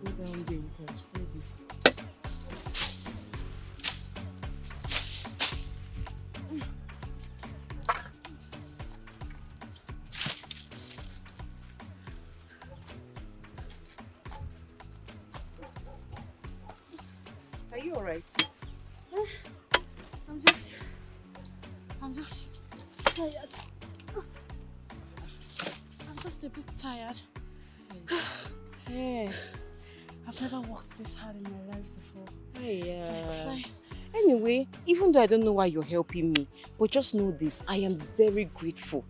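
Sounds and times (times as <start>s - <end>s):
soft background music: 0.0s - 39.0s.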